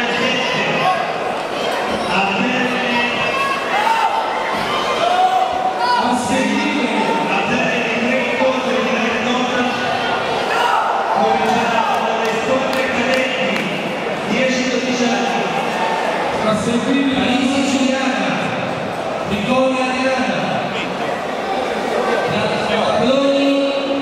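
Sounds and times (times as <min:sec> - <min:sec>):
crowd voices in sports hall: 0:00.0 - 0:24.0.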